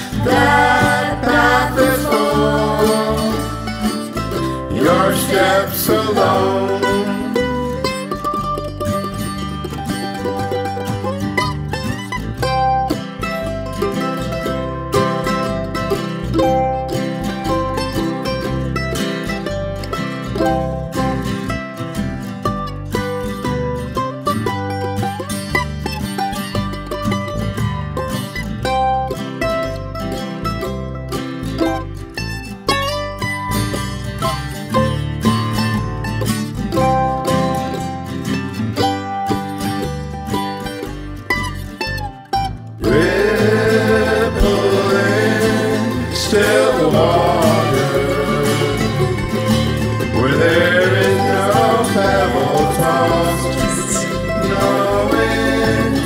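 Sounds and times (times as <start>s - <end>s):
several voices singing: 0.0s - 7.5s, 42.8s - 56.0s
bass line: 0.0s - 56.0s
plucked strings: 0.0s - 56.0s.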